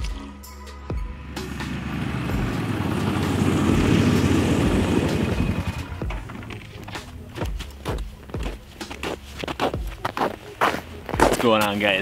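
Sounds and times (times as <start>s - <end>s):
background music with steady beat: 0.0s - 12.0s
four-wheeler engine rumble: 1.0s - 7.5s.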